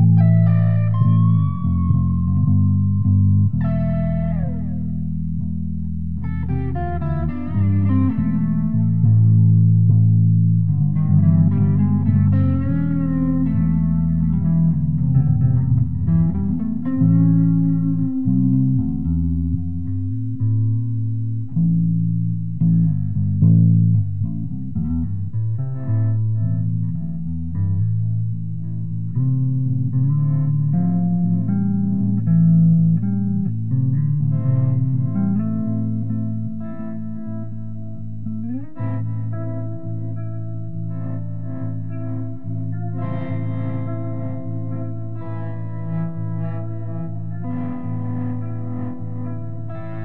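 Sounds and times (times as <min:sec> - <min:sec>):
improvised guitar notes: 0:00.0 - 0:50.0
plucked bass line: 0:00.0 - 0:50.0.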